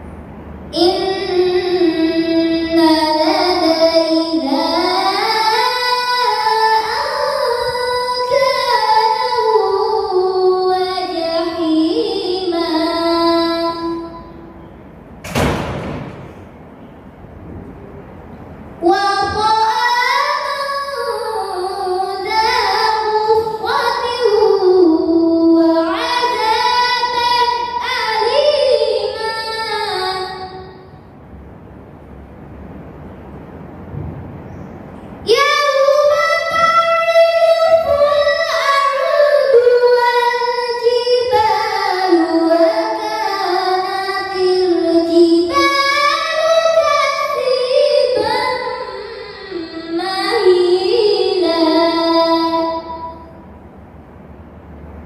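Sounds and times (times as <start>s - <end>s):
girl chanting melodic recitation: 0.6s - 14.6s, 18.7s - 31.1s, 34.6s - 53.4s.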